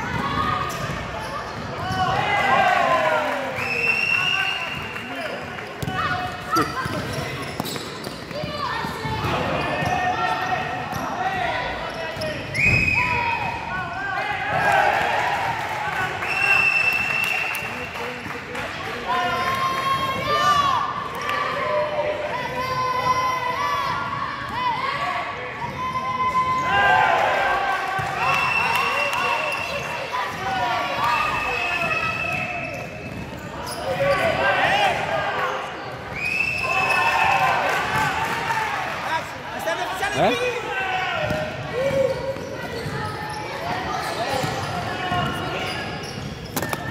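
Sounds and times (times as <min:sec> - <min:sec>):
sneakers squeaking: 0:00.0 - 0:02.4, 0:03.7 - 0:13.8, 0:28.3 - 0:34.7, 0:40.0 - 0:46.9.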